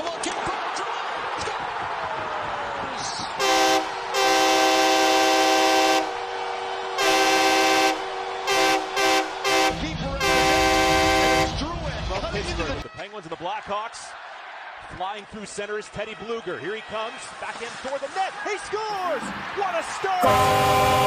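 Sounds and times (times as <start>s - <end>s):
air horn blasts: 3.4s - 6.2s, 7.0s - 11.6s, 20.2s - 21.0s.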